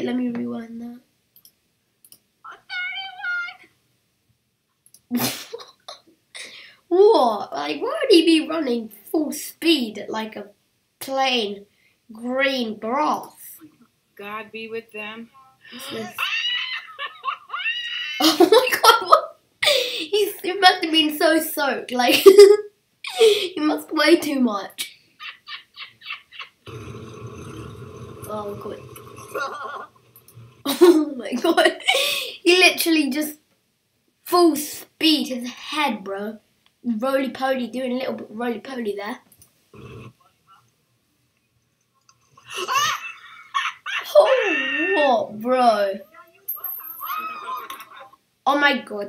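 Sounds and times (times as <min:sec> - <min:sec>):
person laughing: 0:15.8 - 0:18.8, 0:22.2 - 0:23.4, 0:25.2 - 0:26.7, 0:29.3 - 0:29.9, 0:42.5 - 0:45.0, 0:46.8 - 0:48.2.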